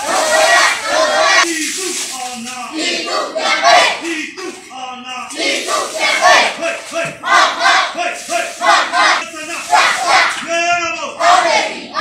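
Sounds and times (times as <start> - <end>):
crowd chanting slogans: 0.0 - 1.8, 2.7 - 12.0.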